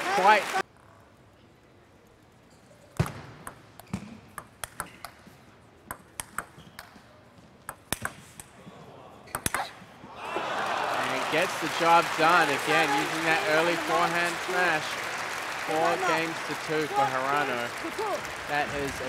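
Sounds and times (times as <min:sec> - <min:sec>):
applause: 0:00.0 - 0:00.6, 0:10.2 - 0:19.0
table tennis ball clicking: 0:03.4 - 0:05.2, 0:05.9 - 0:06.9.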